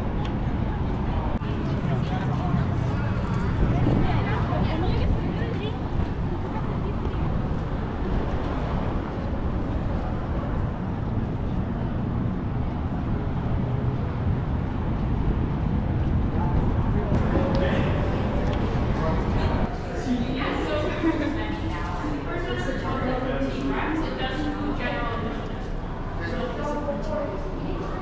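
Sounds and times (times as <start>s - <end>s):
indistinct chatter of visitors: 0.0s - 28.0s.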